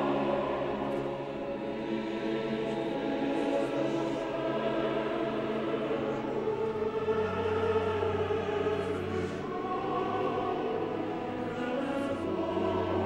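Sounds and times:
opera chorus singing: 0.0s - 13.0s.

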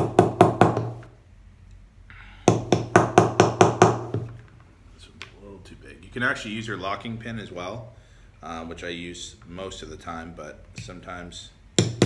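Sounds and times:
hammer tapping metal: 11.8s - 12.0s.

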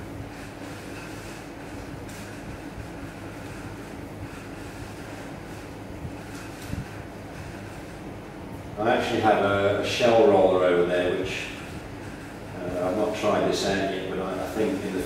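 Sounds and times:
room machinery hum and hiss: 0.0s - 15.0s.

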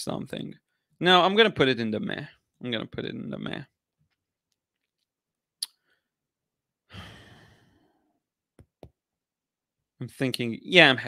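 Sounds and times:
man sighing: 6.9s - 7.9s.

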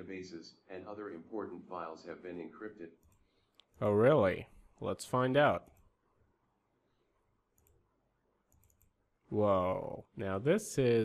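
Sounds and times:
computer mouse clicks: 3.0s - 3.8s, 7.5s - 7.8s, 8.5s - 9.0s.

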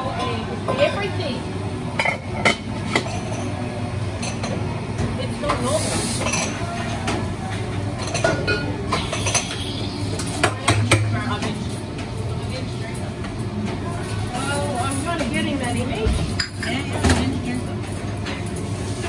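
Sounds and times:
low equipment hum: 0.0s - 19.0s
cups and utensils clinking: 2.0s - 12.1s, 15.0s - 19.0s.

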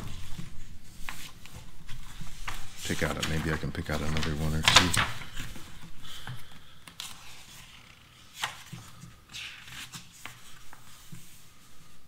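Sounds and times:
hands rubbing paper pages: 0.0s - 12.0s.

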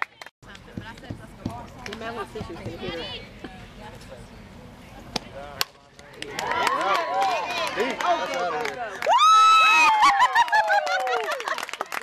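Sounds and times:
crowd cheering and screaming: 9.0s - 11.4s.

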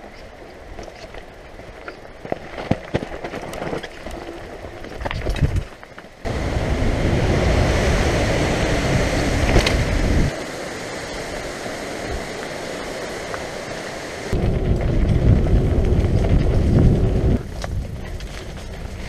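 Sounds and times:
bike rumbling on rocky trail: 0.0s - 10.4s, 11.6s - 19.0s
wind buffeting microphone: 5.2s - 19.0s.

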